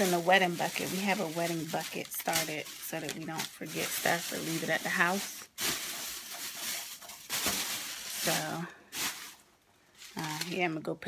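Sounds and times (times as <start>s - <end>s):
rustling and handling noise: 0.0s - 11.0s.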